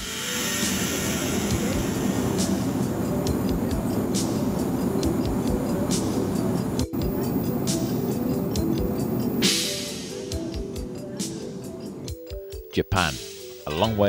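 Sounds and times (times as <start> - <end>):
loud steady roar: 0.0 - 9.5
soundtrack music with ticking beat: 0.0 - 14.0.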